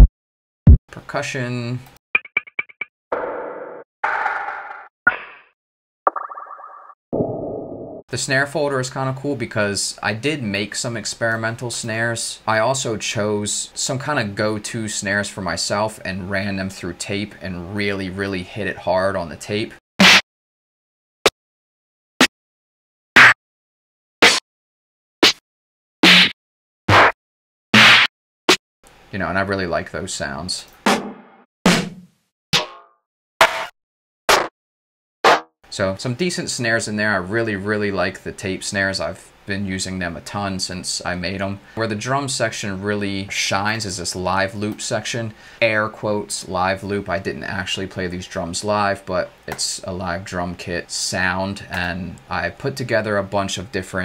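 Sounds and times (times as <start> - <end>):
snare drum hits: 20.0 - 20.2, 30.9 - 32.0.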